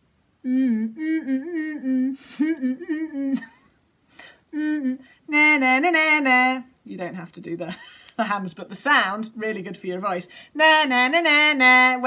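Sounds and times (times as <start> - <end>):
woman singing na na na notes: 0.4 - 3.6, 4.5 - 7.0, 10.0 - 12.0.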